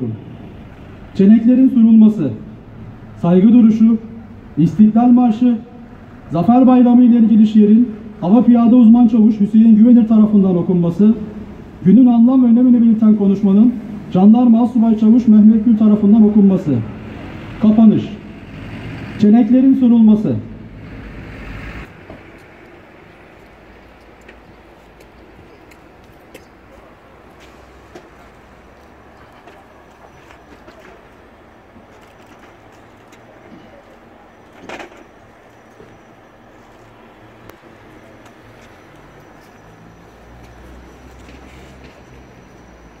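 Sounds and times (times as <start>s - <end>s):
distant traffic hum: 0.0s - 43.0s.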